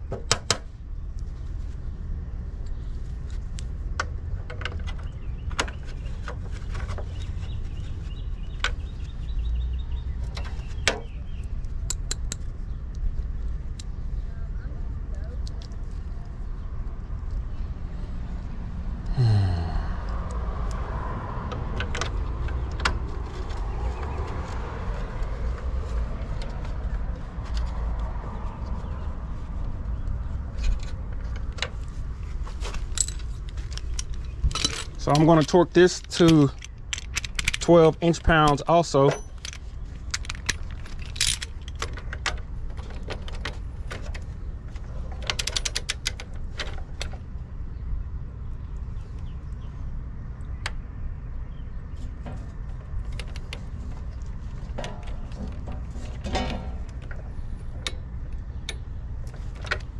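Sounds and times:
low outdoor rumble: 0.0s - 59.9s
passing vehicle engine: 17.1s - 31.0s.

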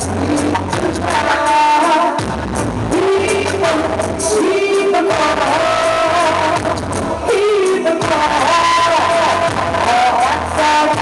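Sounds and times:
instrumental backing: 0.0s - 11.0s
woman singing into a microphone: 0.0s - 11.0s.

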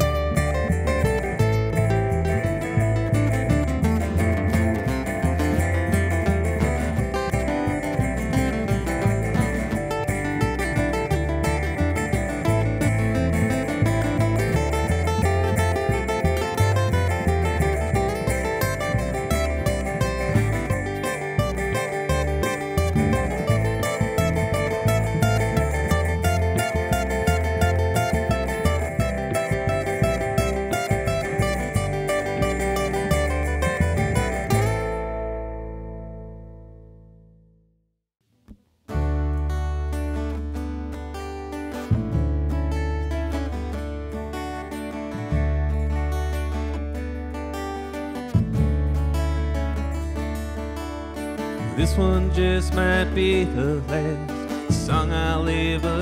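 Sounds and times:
acoustic guitar: 0.0s - 37.6s, 38.4s - 56.0s
resonator guitar: 0.0s - 37.7s, 38.4s - 56.0s
upright bass: 0.0s - 37.8s, 38.8s - 56.0s.

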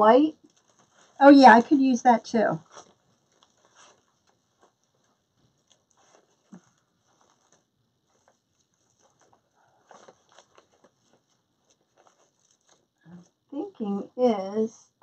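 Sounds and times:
mesh tubing rustling and tapping: 0.4s - 13.6s.

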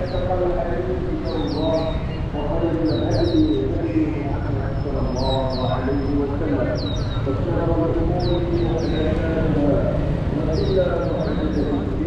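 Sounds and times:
murmur of voices: 0.0s - 12.0s
small birds chirping: 0.0s - 12.0s.

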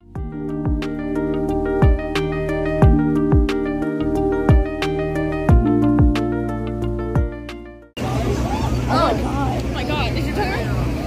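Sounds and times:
bus engine humming: 0.0s - 11.0s.

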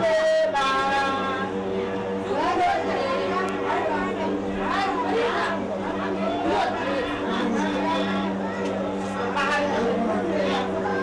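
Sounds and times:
people talking at once: 0.0s - 11.0s
steady low hum: 0.0s - 11.0s.

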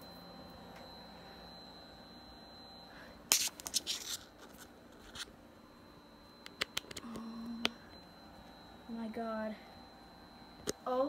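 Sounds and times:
computer hum with high whine: 0.0s - 11.0s.

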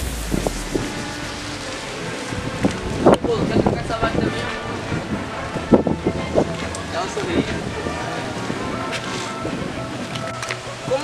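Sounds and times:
wind on microphone: 0.0s - 10.9s.

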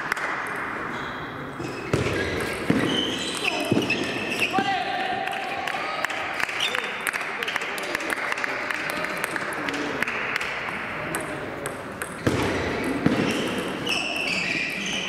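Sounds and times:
table tennis balls clicking: 8.8s - 13.8s.

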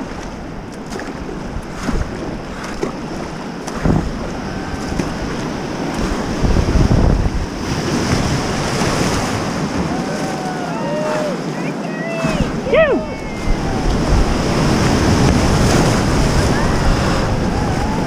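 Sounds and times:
splashing surges: 0.0s - 18.0s
whitewater rapids rushing: 0.8s - 18.0s
person whooping: 9.9s - 11.4s.

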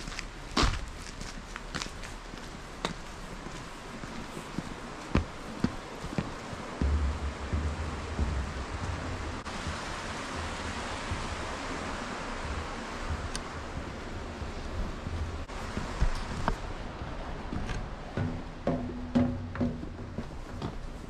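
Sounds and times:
stream water rushing: 3.0s - 18.8s
wind buffeting microphone: 3.4s - 21.0s.

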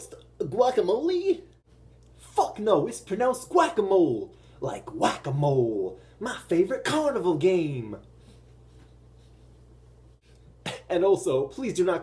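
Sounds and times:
man talking: 0.0s - 1.6s, 2.2s - 8.1s, 10.6s - 12.0s
low room hum: 0.0s - 12.0s
man coughing: 10.6s - 11.0s.

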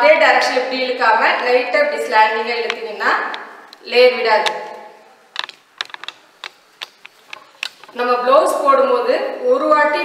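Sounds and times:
woman's voice: 0.0s - 4.7s, 7.9s - 10.0s
clicks and taps on wooden frame: 5.4s - 7.9s.

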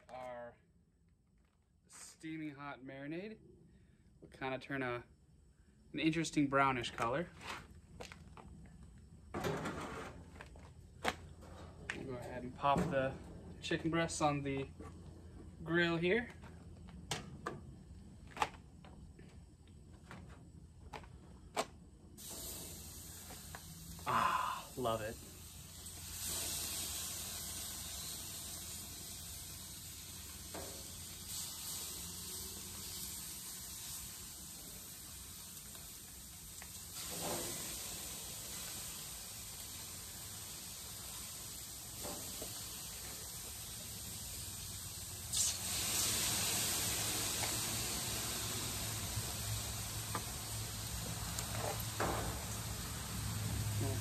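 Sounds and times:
meat sizzling on a grill: 22.2s - 54.0s.

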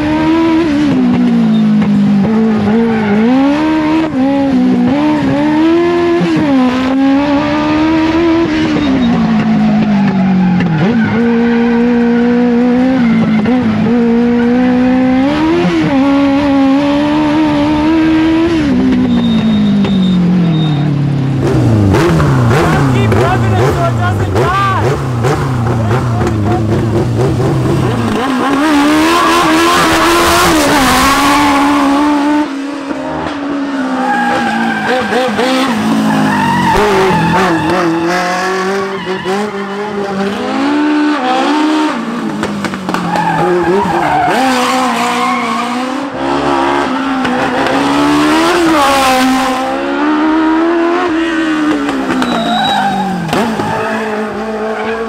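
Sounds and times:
motorcycle engine revving hard: 0.0s - 20.6s, 21.4s - 42.7s, 43.4s - 55.0s
tyres squealing: 33.8s - 39.9s, 51.9s - 55.0s.

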